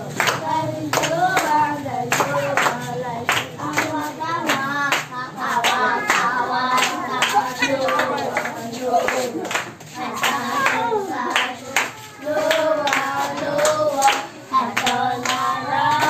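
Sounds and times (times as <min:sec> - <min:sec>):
group of voices singing: 0:00.0 - 0:16.0
hands clapping in rhythm: 0:00.0 - 0:16.0.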